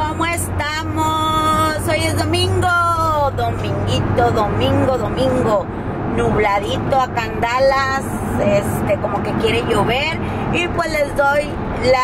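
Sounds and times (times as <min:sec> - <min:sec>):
woman's sing-song voice: 0:00.0 - 0:05.6
car driving rumble from inside: 0:00.0 - 0:12.0.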